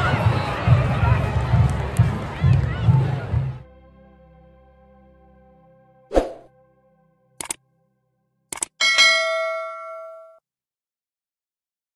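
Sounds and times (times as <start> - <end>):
notification bell ding: 8.8 - 10.4.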